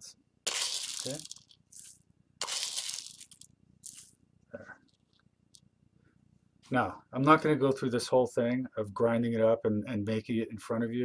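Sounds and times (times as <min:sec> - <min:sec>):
resin pieces crunching and rattling: 0:00.5 - 0:04.1.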